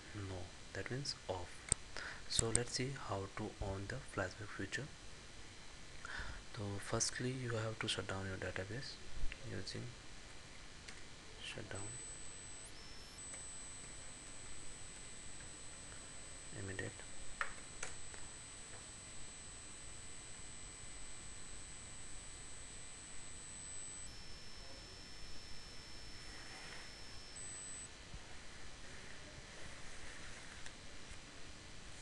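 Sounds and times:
high-pitched whine: 0.0s - 32.0s
even hiss: 11.3s - 30.7s.

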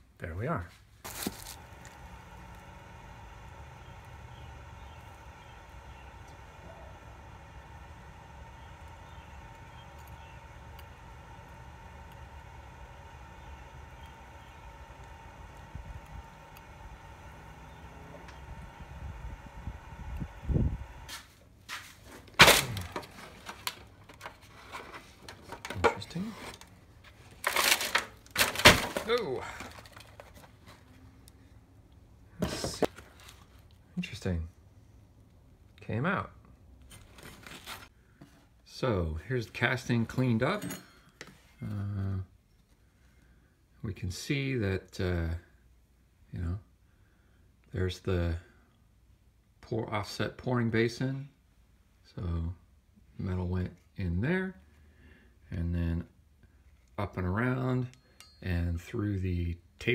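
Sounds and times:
steady hum with faint tone: 0.8s - 59.9s.

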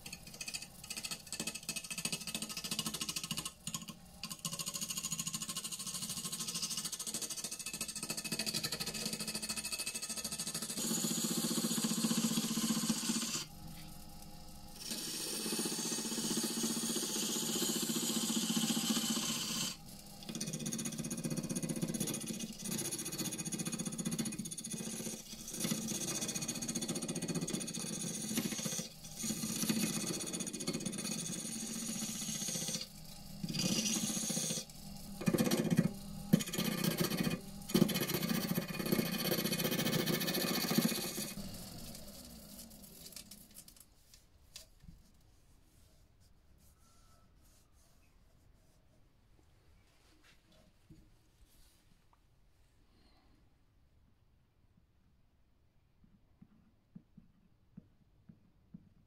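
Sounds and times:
wood lathe gouge cutting wood: 0.3s - 13.5s, 14.8s - 43.3s.

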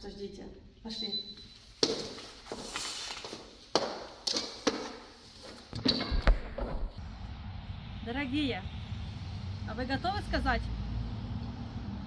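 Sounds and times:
low rumble: 6.9s - 12.0s.

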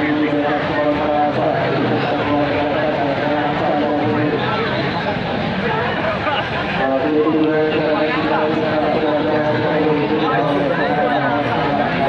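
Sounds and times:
large crowd noise: 0.0s - 12.0s.

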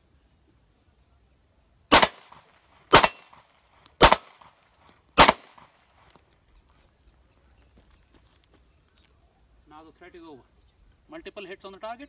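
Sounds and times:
pistol shots with echo: 1.9s - 4.6s, 5.2s - 5.8s.

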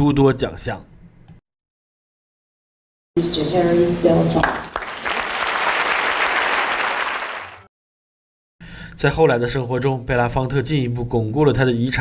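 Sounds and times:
audience applause: 4.4s - 7.7s.

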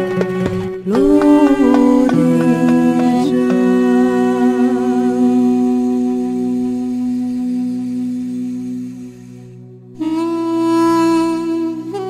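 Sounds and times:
man chanting recitation: 0.9s - 7.2s.

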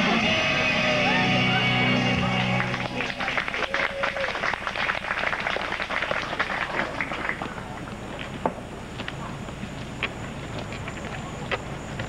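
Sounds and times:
song ending: 0.0s - 3.0s
audience applauding: 2.2s - 7.9s.

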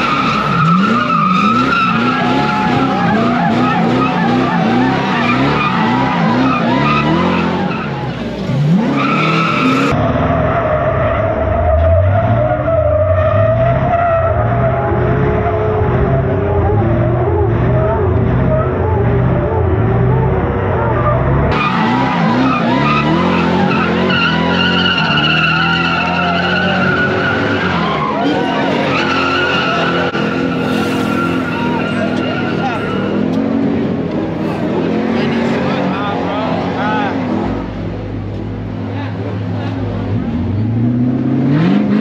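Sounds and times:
engine revving: 0.0s - 38.0s, 39.4s - 42.0s
car tyres squealing: 0.0s - 42.0s.

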